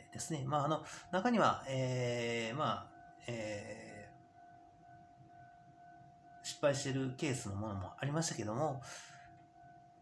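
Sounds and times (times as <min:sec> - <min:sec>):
faint high-pitched tone: 0:00.0 - 0:10.0.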